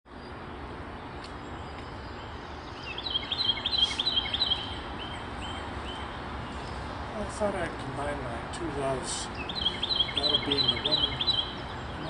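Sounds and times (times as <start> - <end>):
low outdoor rumble: 0.1 - 12.0
songbird chirping: 0.1 - 12.0.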